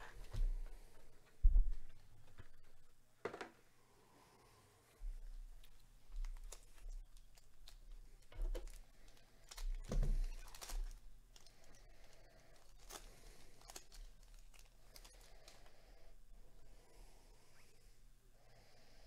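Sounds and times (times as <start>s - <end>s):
cards being shuffled: 5.6s - 11.5s
foil wrapper crinkling and tearing: 5.6s - 15.8s.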